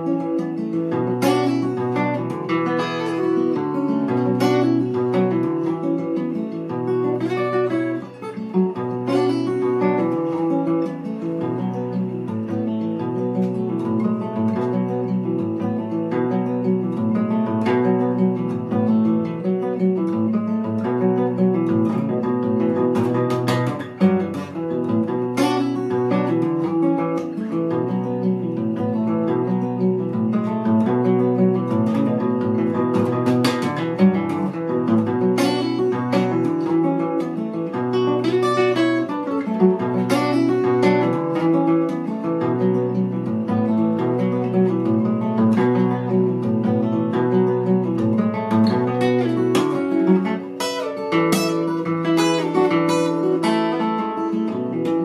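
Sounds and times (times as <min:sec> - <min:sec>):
fingerpicked acoustic guitar: 0:00.0 - 0:55.0.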